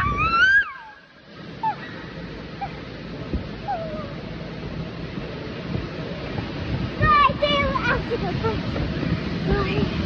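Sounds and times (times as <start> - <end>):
girl screaming: 0.0 - 1.0.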